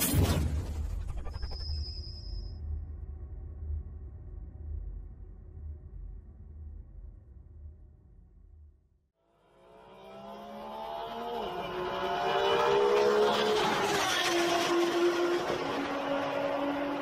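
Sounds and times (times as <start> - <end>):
car engine revving: 9.5 - 17.0.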